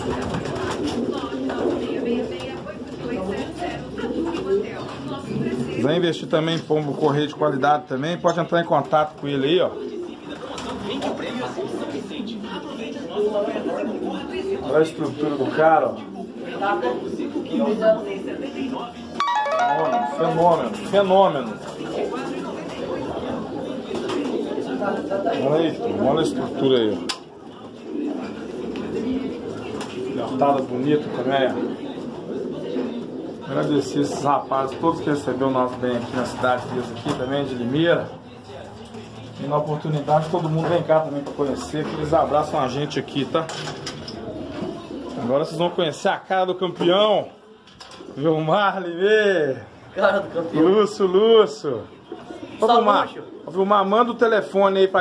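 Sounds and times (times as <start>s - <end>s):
pigeons cooing: 0.0s - 19.2s, 19.9s - 55.0s.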